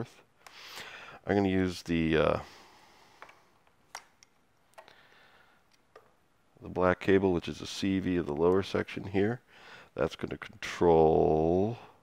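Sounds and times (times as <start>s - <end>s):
patch cables clicking into jacks: 3.2s - 6.2s.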